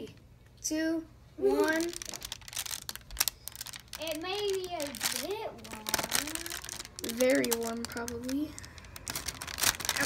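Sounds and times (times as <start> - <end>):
paper crinkling and rustling: 1.5 - 10.0.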